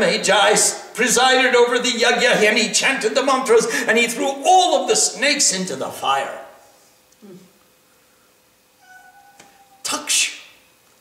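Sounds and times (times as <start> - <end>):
cat mewing faintly: 8.8 - 9.9.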